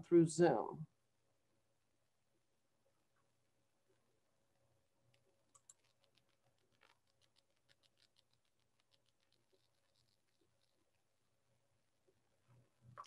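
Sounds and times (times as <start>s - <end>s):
computer keyboard typing: 5.1s - 10.8s.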